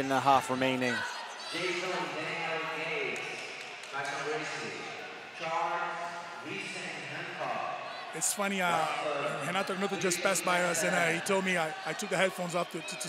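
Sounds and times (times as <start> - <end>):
men talking in a large hall: 0.0 - 13.0.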